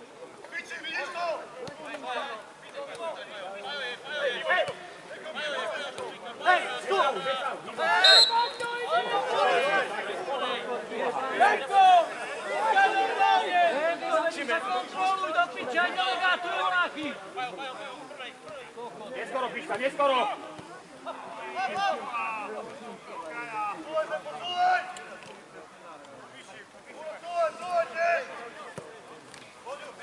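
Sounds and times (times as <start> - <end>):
spectators and players shouting: 0.4 - 25.5.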